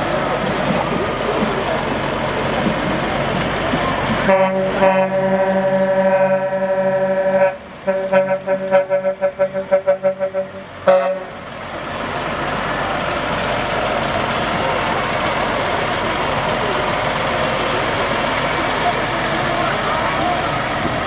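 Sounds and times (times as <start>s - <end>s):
truck diesel engine passing: 0.0s - 21.0s.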